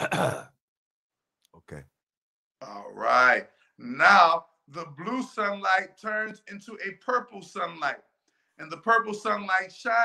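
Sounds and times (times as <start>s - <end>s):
man clearing his throat: 0.0s - 0.6s.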